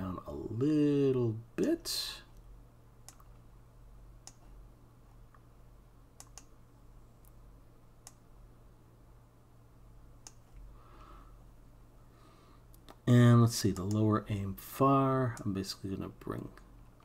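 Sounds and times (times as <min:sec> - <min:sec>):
low steady hum: 0:00.0 - 0:17.0
computer mouse clicking: 0:03.0 - 0:03.4, 0:04.2 - 0:04.5, 0:06.2 - 0:06.6, 0:08.0 - 0:08.2, 0:10.2 - 0:10.6, 0:13.7 - 0:14.0.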